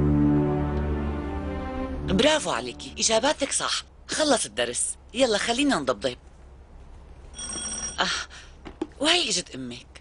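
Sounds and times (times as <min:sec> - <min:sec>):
electronic doorbell ringing: 0:07.3 - 0:08.0.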